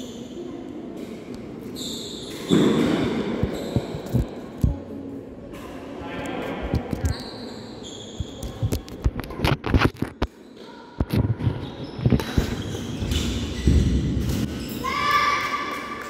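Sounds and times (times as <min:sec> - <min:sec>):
shoe squeaks: 0:01.6 - 0:04.6, 0:06.8 - 0:15.2.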